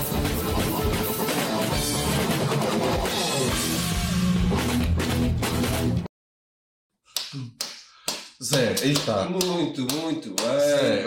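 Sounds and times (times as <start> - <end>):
sharp hand claps: 7.1 - 10.6
man speaking: 8.4 - 11.0.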